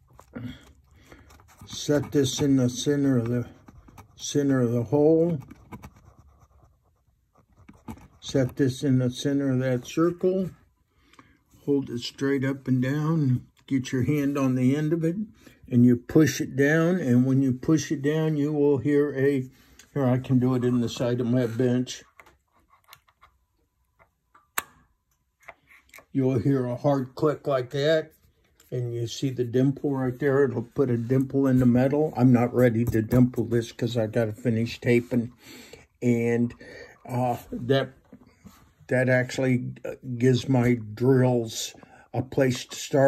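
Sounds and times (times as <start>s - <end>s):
faint scratching on paper: 0.1s - 9.2s.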